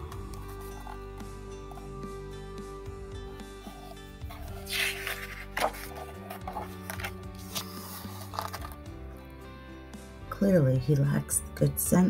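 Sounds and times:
soft background music: 0.0s - 12.0s
book page turning: 0.1s - 1.2s, 3.6s - 8.9s.

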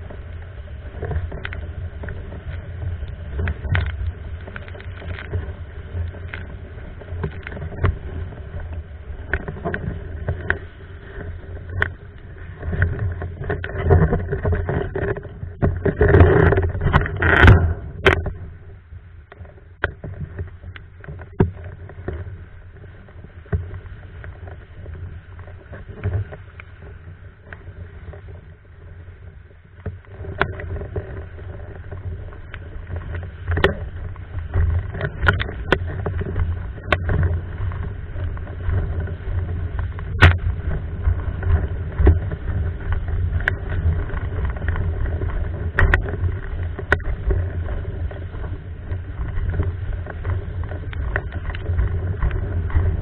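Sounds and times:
board slapping waves: 0.0s - 53.0s
rush of water and wind: 0.0s - 53.0s.

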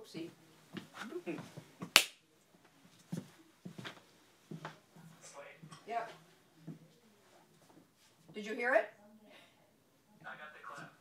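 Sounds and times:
hand clap: 1.9s - 2.2s.

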